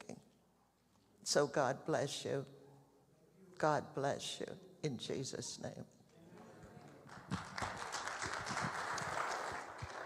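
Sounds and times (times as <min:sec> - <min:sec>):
congregation applauding: 0:06.9 - 0:10.0.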